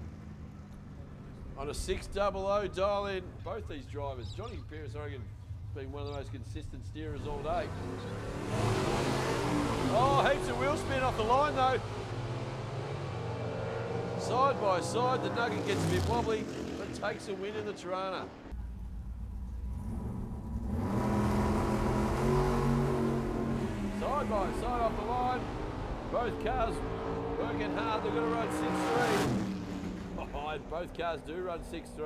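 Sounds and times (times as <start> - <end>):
drag car engines at full throttle: 4.6 - 32.0.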